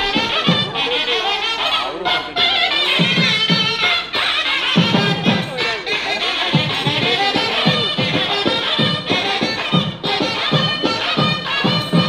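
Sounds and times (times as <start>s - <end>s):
double-reed pipe melody: 0.0s - 12.0s
drum strokes: 0.0s - 12.0s.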